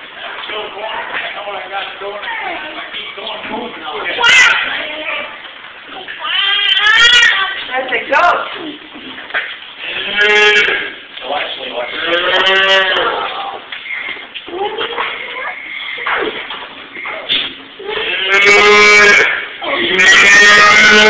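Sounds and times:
child calling moo: 6.2 - 7.4.

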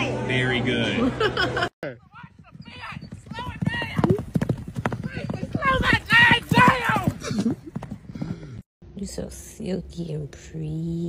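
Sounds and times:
clip-clopping knocks: 2.3 - 8.4.

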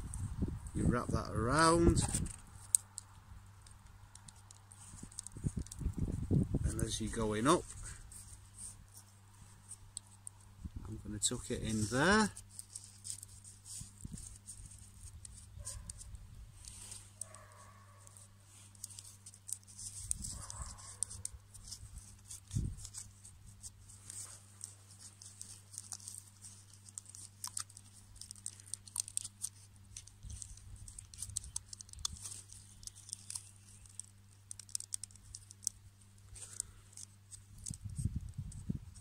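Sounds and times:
bark strips crackling and rustling: 0.0 - 39.0
small dry clicks: 1.9 - 5.9, 9.7 - 39.0.

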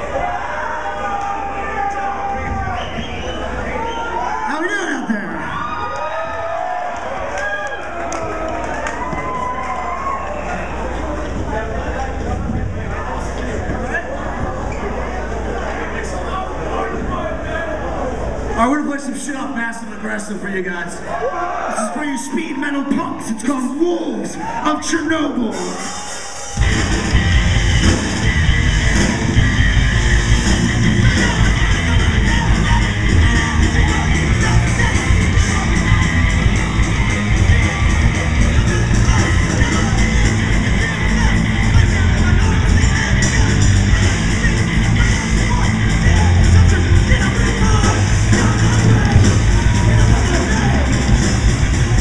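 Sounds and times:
drums: 0.0 - 15.6, 25.3 - 52.0
crowd cheering and shouting: 0.0 - 52.0
distorted electric guitars: 25.6 - 52.0
bass guitar: 26.6 - 52.0.

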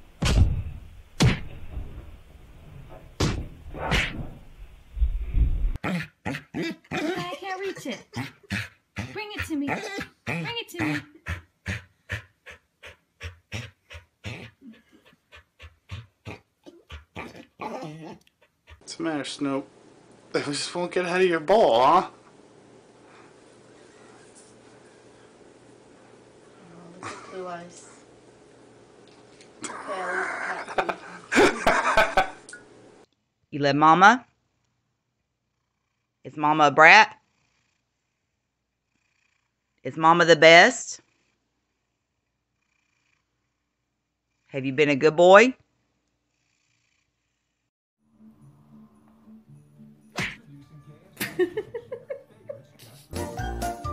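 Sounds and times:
dog panting with whines: 8.5 - 10.1, 10.9 - 18.9.

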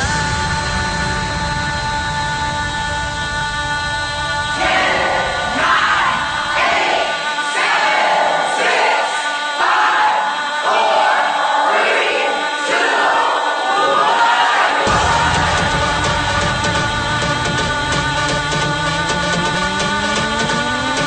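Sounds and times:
choir singing: 0.0 - 21.0.

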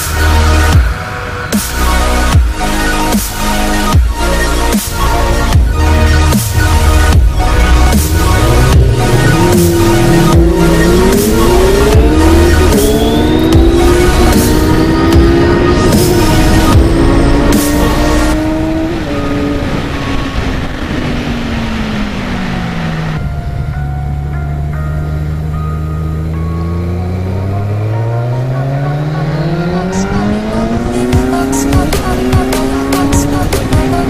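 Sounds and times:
motorcycle engine revving: 4.8 - 34.0
wind rush on microphone: 18.4 - 24.0.

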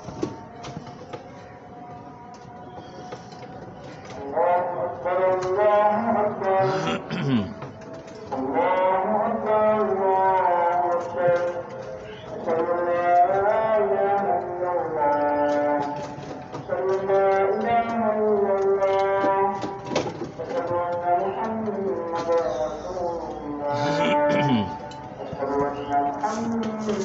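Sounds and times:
person singing long notes: 5.9 - 7.7, 23.6 - 24.9.

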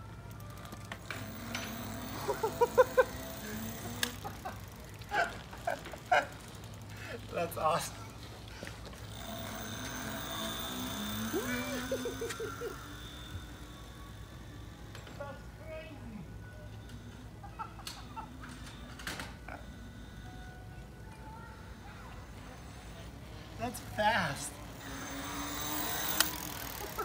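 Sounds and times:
electric bike motor whine: 0.0 - 20.8, 21.8 - 27.0
person laughing: 2.2 - 6.3, 11.3 - 12.9, 17.4 - 18.6, 26.7 - 27.0
sharp clicks: 26.0 - 26.5.

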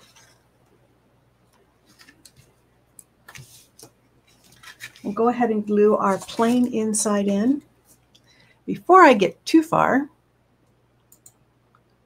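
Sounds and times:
cardstock rustling: 1.8 - 2.5, 3.3 - 5.2, 5.9 - 7.0.

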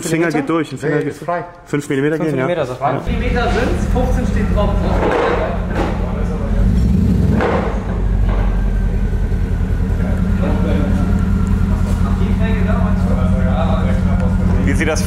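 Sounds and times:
car engine idling: 3.1 - 15.0.

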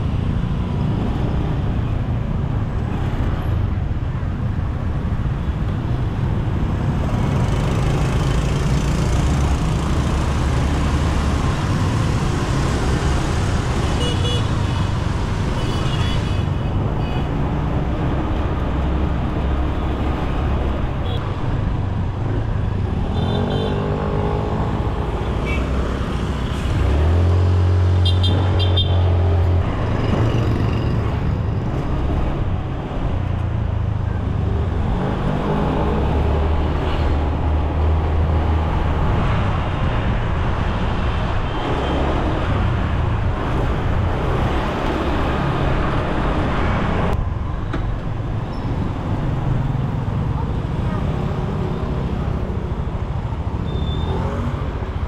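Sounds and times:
street traffic: 0.0 - 55.0.

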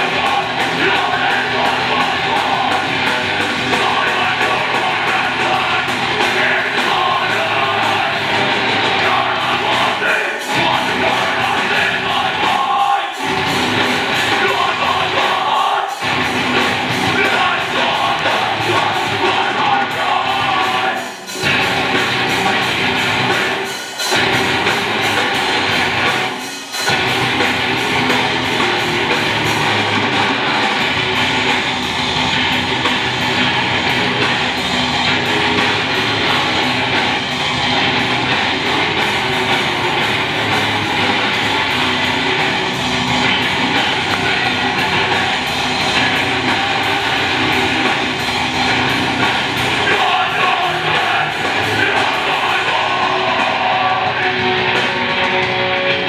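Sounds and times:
electric guitar: 0.0 - 56.0
fast drum and cymbal hits: 0.0 - 56.0
live rock band playing: 0.0 - 56.0.

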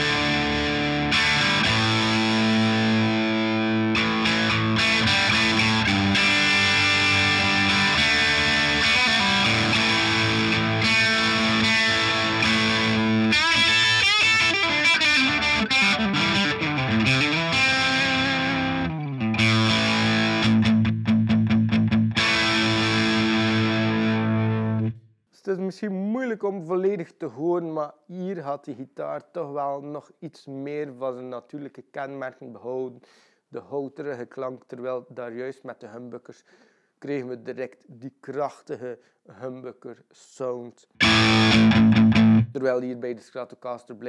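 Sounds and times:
distorted electric guitar: 0.0 - 25.0, 41.0 - 42.6.

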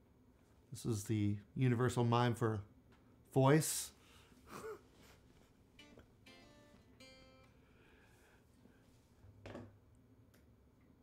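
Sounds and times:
electric guitar chords strummed: 5.8 - 7.7.

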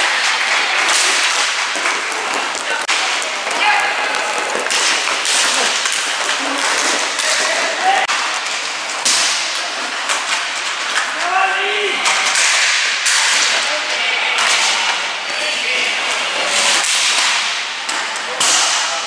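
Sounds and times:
players shouting: 0.0 - 8.1
skate wheels rolling: 0.0 - 18.9
sticks and puck clacking: 0.0 - 19.0.

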